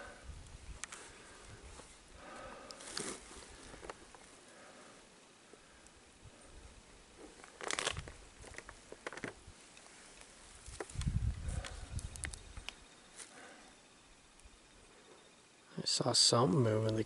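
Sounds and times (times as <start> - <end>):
faint crackling and rustling: 0.0 - 15.3.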